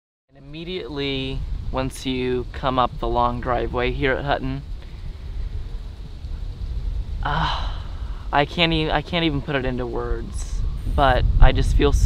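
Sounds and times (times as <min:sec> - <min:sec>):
low outdoor rumble: 0:00.3 - 0:12.0.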